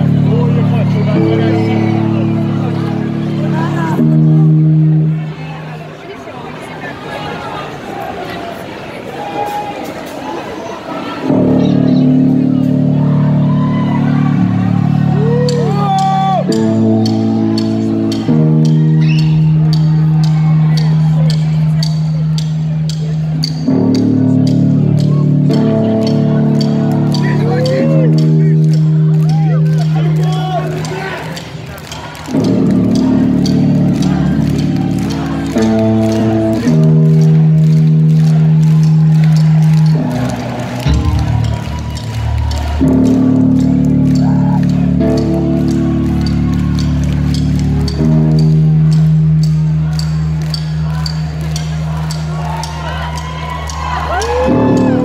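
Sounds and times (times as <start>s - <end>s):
distorted electric guitar: 0.0s - 5.7s, 11.2s - 55.0s
live band music over speakers: 32.2s - 55.0s.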